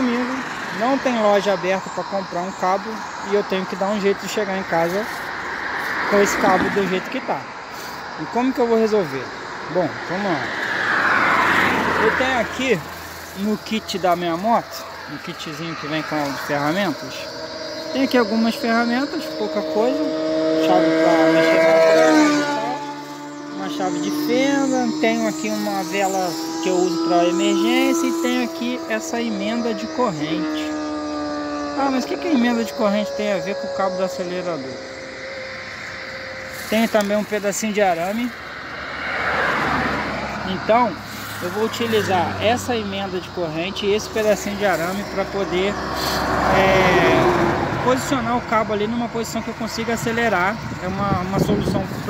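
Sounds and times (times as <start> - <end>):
road vehicle passing: 0.0 - 52.0
man's voice trailing off: 45.1 - 47.9.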